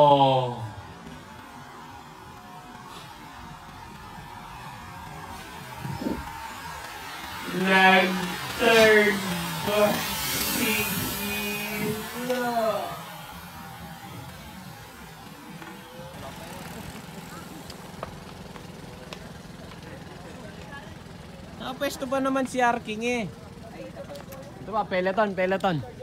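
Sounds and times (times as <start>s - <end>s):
voices talking: 0.0s - 26.0s.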